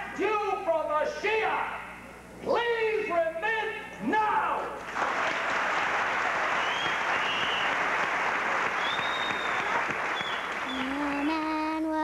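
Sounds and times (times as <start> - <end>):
audience applauding: 4.9 - 11.4.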